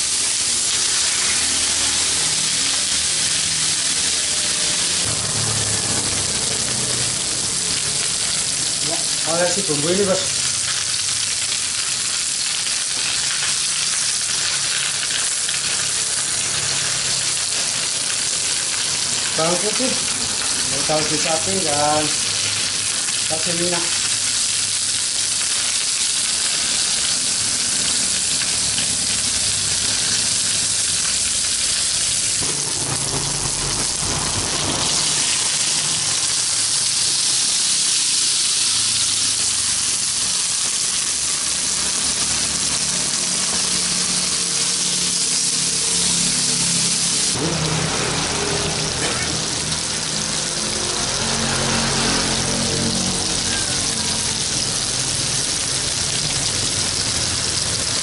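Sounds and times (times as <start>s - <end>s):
fish sizzling in hot oil: 0.0s - 58.0s.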